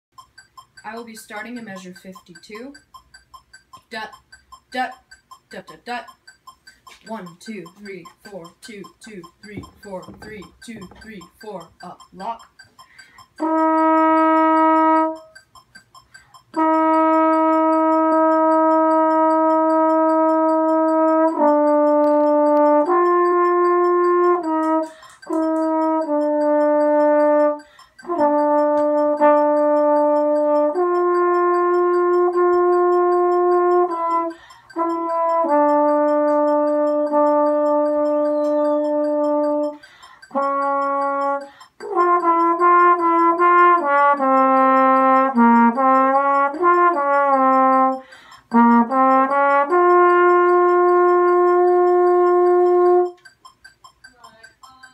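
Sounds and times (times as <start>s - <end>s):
solo trombone playing: 13.4s - 15.3s, 16.6s - 53.2s.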